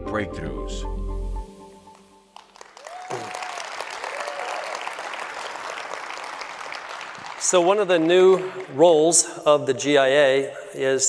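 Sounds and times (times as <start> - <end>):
music chord: 0.0 - 2.4
audience applauding: 2.4 - 9.3.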